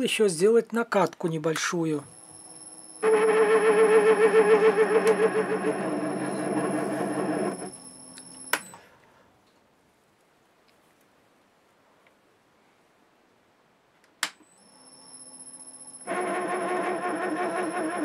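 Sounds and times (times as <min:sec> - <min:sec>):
lathe running with wavering hum: 0:02.3 - 0:08.0, 0:14.6 - 0:18.0.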